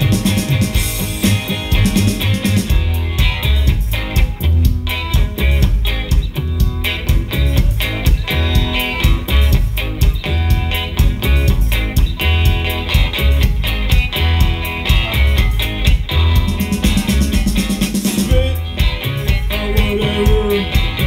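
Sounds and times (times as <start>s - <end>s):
instrumental rock music: 0.0s - 21.0s.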